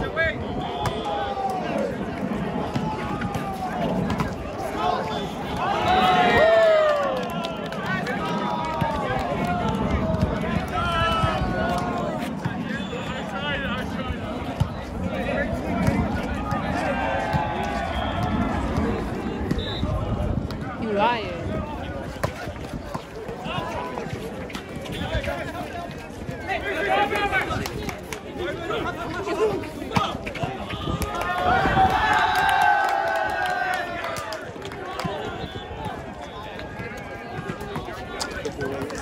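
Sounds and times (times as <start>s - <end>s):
players and spectators shouting: 0.0s - 39.0s.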